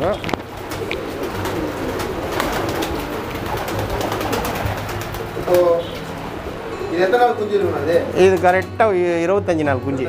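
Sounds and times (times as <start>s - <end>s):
pigeon wings flapping: 0.0s - 6.3s
pigeons cooing: 0.0s - 8.6s.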